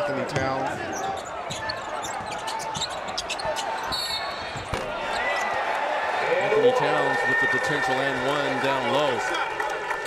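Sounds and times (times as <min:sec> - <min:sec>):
shoe squeaks: 0:00.8 - 0:05.4.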